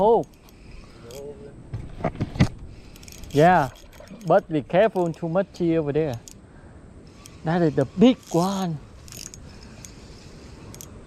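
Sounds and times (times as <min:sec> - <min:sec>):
fishing reel winding: 0:00.2 - 0:01.3, 0:02.8 - 0:05.4, 0:06.0 - 0:06.4, 0:07.2 - 0:11.0.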